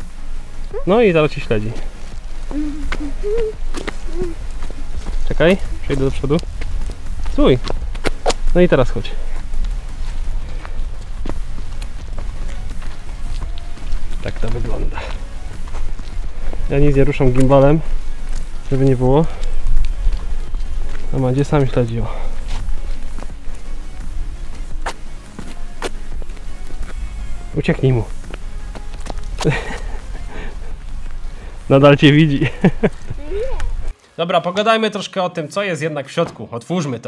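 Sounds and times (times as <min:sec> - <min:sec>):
background music with bass: 0:00.0 - 0:33.9
steady low rumble: 0:00.0 - 0:33.9
footsteps on wet pavement: 0:00.0 - 0:34.0.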